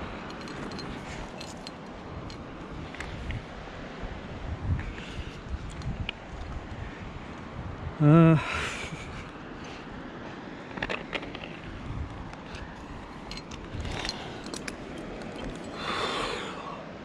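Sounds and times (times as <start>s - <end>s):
hands and gear scraping rock: 12.4s - 16.0s.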